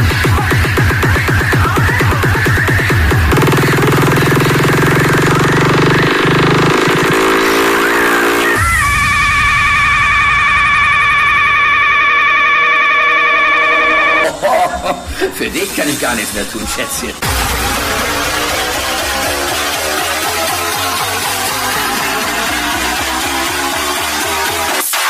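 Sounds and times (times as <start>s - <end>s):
fast kick drum beat: 0.0s - 7.4s, 17.2s - 24.9s
low synth with rising sweep: 2.7s - 8.6s, 17.2s - 24.8s.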